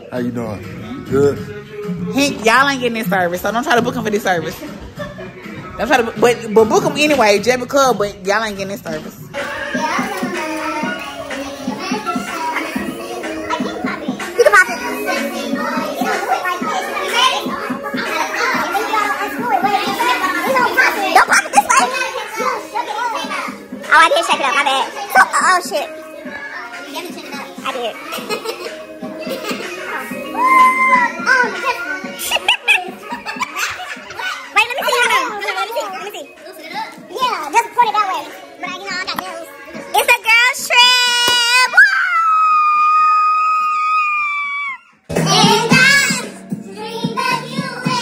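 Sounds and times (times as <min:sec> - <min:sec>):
music playing: 0:00.0 - 0:41.9, 0:45.0 - 0:48.0
women talking and cheering: 0:01.8 - 0:46.3
loud shouts: 0:30.3 - 0:31.3, 0:40.7 - 0:44.9
women chattering and laughing: 0:31.8 - 0:36.7.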